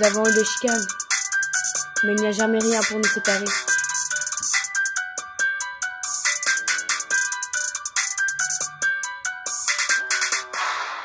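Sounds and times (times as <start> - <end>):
electronic instrumental music: 0.0 - 11.0.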